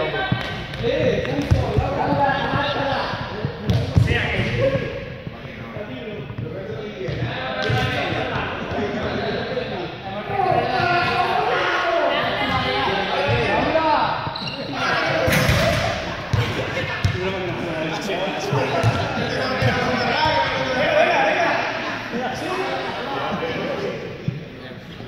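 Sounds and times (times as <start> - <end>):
voices talking and calling out: 0.0 - 25.0.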